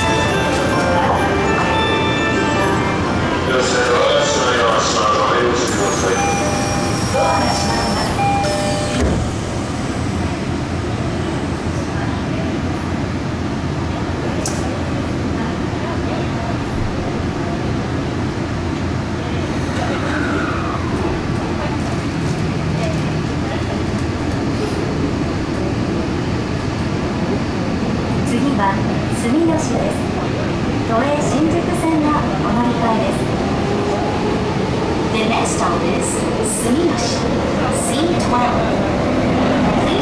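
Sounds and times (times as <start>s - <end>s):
train running rumble: 0.0s - 40.0s
train clunk: 5.7s - 9.6s.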